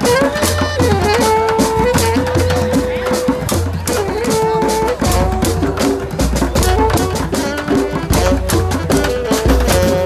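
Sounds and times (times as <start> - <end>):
washboard and cymbal percussion: 0.0 - 10.0
music with bass line: 5.0 - 10.0.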